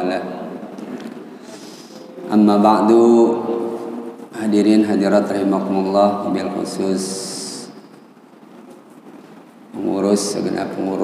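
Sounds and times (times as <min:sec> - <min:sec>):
man speaking into headset microphone: 0:02.0 - 0:07.8, 0:09.8 - 0:11.0.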